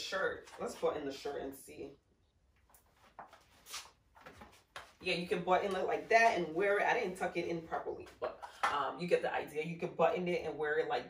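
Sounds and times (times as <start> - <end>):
fabric rustling: 2.8 - 5.0.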